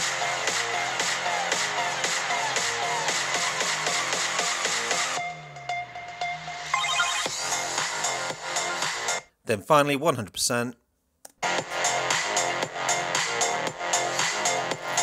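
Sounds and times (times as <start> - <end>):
electronic dance music: 6.8 - 7.6.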